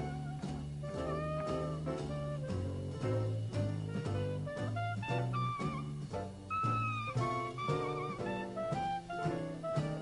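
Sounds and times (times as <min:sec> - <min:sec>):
walking double bass: 0:00.0 - 0:10.0.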